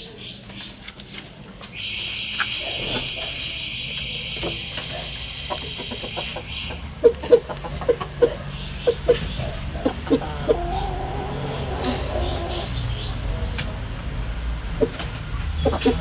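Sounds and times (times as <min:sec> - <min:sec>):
chickens clucking: 0:00.0 - 0:16.0.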